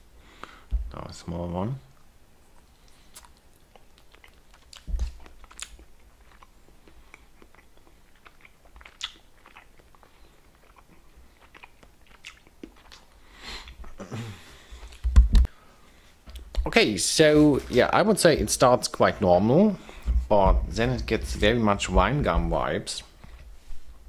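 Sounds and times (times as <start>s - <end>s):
wet mouth clicks and smacks: 2.6s - 6.5s, 7.4s - 10.8s
person chewing gummy candy: 2.6s - 14.0s.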